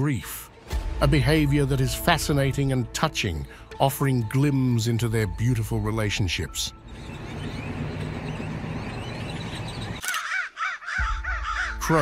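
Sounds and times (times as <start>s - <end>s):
bird repeated rising and falling calls: 6.4s - 12.0s
flock of birds chattering: 6.9s - 12.0s.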